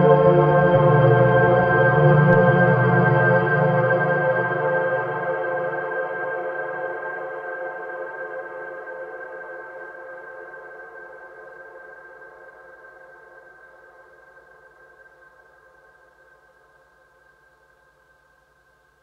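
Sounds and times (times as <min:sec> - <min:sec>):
synthesizer drone chord: 0:00.0 - 0:06.6.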